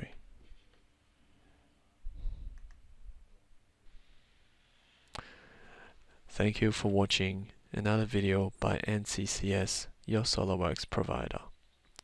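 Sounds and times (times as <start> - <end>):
computer mouse clicks: 2.5 - 2.8.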